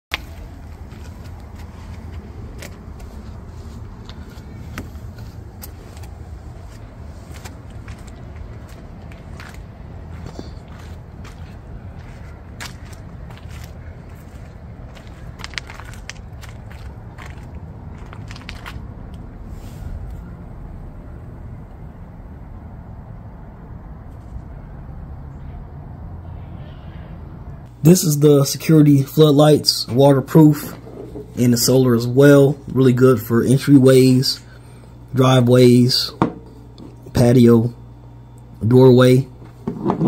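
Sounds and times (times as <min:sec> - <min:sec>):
small clicks and scuffs: 0:00.1 - 0:18.9
low outdoor rumble: 0:00.1 - 0:40.0.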